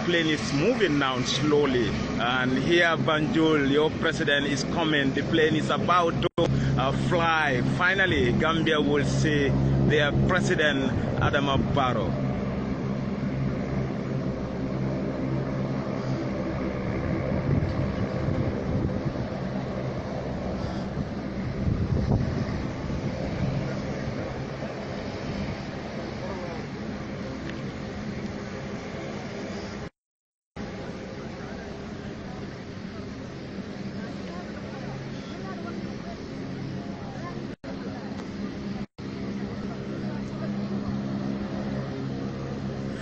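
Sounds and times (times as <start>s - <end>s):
aircraft engines humming: 0.0s - 30.0s, 30.6s - 43.0s.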